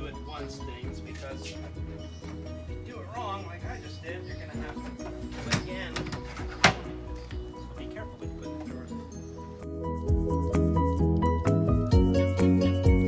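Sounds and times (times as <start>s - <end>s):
background music with singing: 0.0s - 13.0s.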